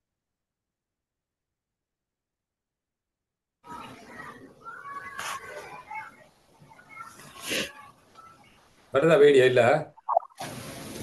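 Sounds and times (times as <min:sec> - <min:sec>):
low background noise: 0:03.6 - 0:11.0.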